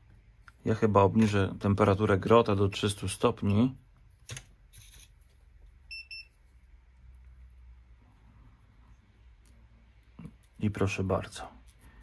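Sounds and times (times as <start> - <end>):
soldering station beeping: 5.8 - 6.5.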